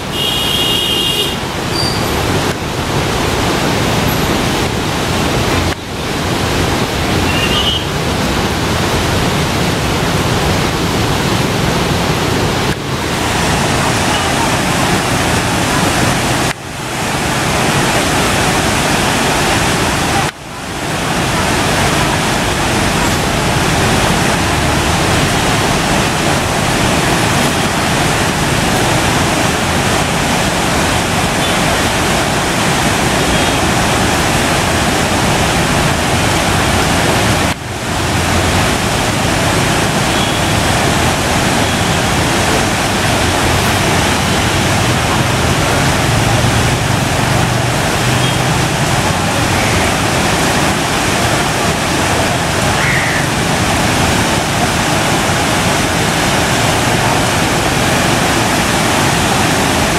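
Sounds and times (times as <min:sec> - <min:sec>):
river water rushing: 0:00.0 - 0:59.9.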